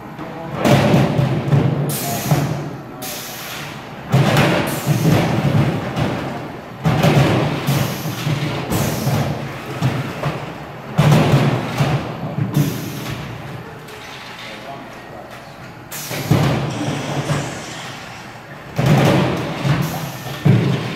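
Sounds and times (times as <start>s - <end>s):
heavy booming thuds of totes: 0.4s - 2.7s, 4.0s - 13.4s, 16.0s - 17.6s, 18.6s - 20.9s.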